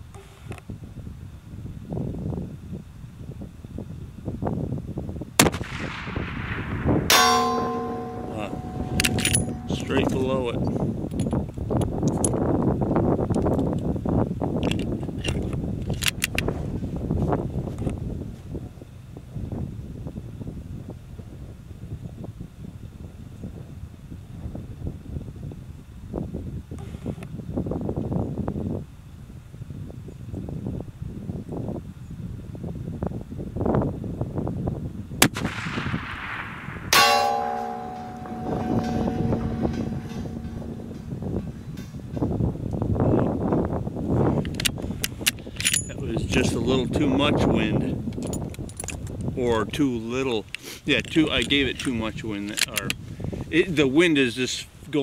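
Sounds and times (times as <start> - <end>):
rifle shot: 5.4 - 9.7, 35.2 - 40.9
bullet clanging on steel plate: 7.1 - 10.4, 36.9 - 42.3
rifle bolt clicks: 9.0 - 9.5, 44.5 - 45.8, 52.5 - 53.0.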